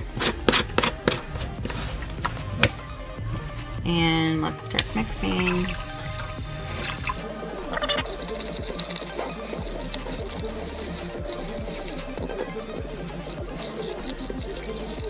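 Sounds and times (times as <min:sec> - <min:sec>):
background music with beat: 0:00.0 - 0:15.0
milk frother whirring: 0:04.8 - 0:15.0.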